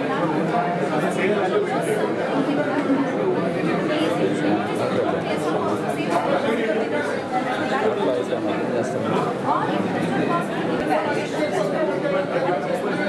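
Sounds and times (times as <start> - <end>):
crowd of overlapping voices: 0.0 - 13.0.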